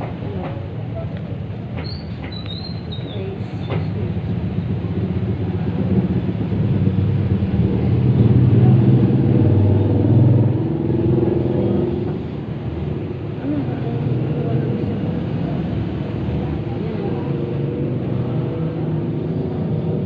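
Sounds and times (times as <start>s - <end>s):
low engine rumble: 0.0s - 20.0s.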